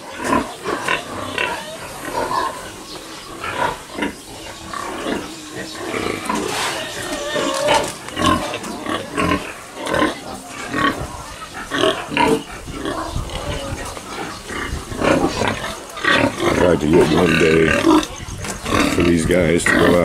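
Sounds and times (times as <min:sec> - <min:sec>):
pigs grunting: 0:00.0 - 0:20.0.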